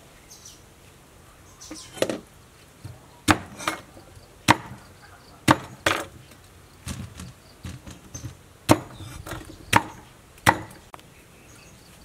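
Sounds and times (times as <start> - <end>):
knife chopping on chopping block: 3.3 - 3.8, 4.5 - 4.8, 5.5 - 6.1, 8.7 - 10.8.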